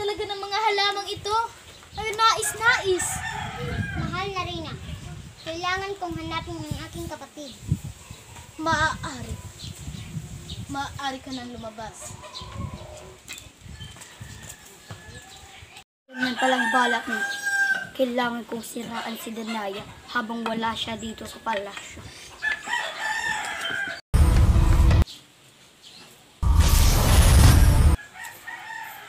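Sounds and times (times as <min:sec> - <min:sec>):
rooster crowing: 0:02.8 - 0:04.1, 0:14.0 - 0:17.9, 0:22.4 - 0:24.0, 0:28.0 - 0:29.0
magic transformation sound effect: 0:26.4 - 0:28.0.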